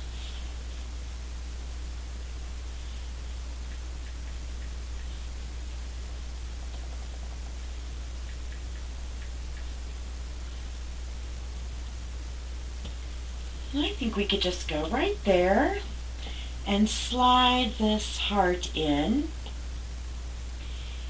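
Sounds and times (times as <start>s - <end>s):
low hum: 0.0s - 21.0s
steady hiss: 0.0s - 21.0s.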